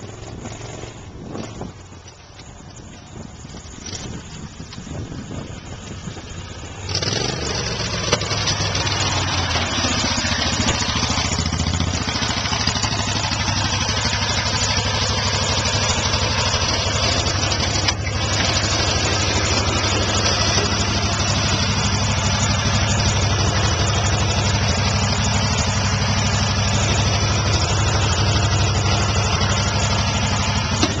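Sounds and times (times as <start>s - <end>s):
golf cart engine running: 0.0s - 31.0s.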